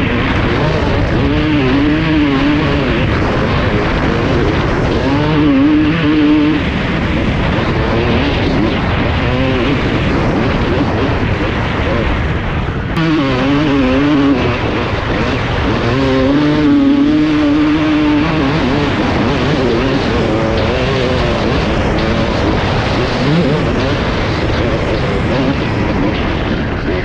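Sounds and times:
motocross engine revving: 0.0 - 27.0.

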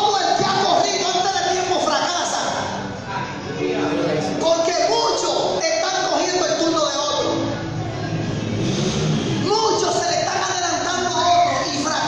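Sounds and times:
man preaching through loudspeakers: 0.0 - 2.8, 3.6 - 7.6, 9.4 - 12.0.

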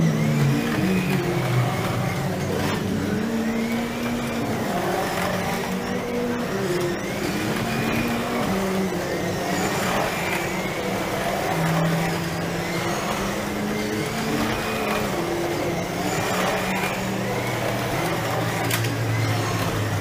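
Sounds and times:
slot car motors whining: 0.0 - 20.0.

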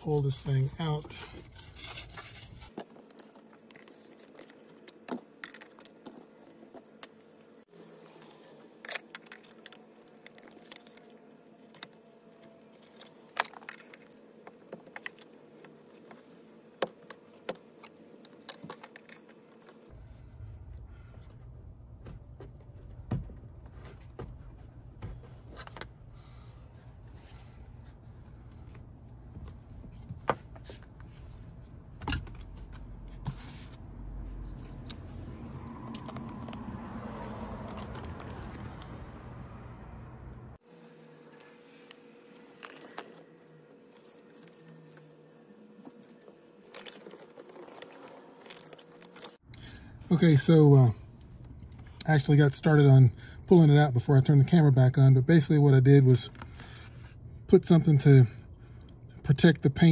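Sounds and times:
low steady rumble: 19.9 - 36.8.

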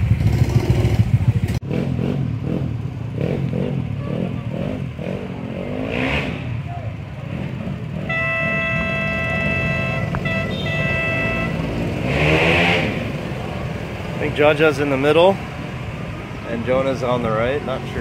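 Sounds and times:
go-kart engines: 0.0 - 18.0.

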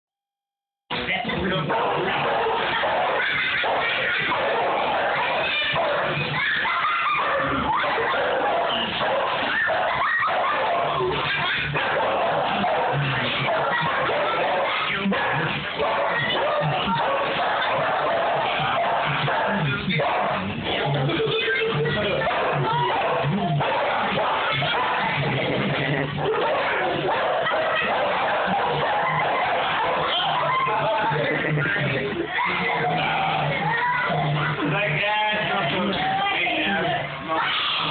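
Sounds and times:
dogs barking and yipping: 1.6 - 34.0.

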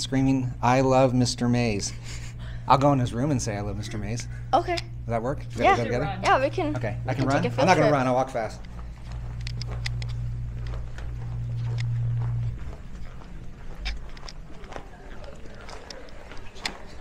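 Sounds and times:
steady low hum: 0.0 - 17.0
brisk footsteps clicking: 8.0 - 17.0.

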